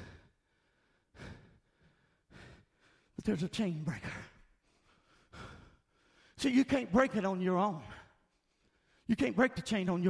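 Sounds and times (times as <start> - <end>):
faint breath: 0.0 - 3.2
man speaking: 3.2 - 4.4, 6.4 - 8.0, 9.1 - 10.0.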